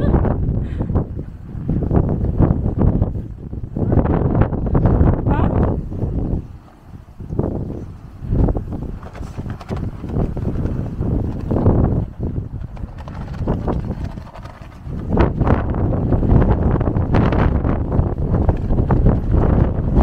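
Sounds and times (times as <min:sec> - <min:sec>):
gusty wind buffeting microphone: 0:00.0 - 0:20.0.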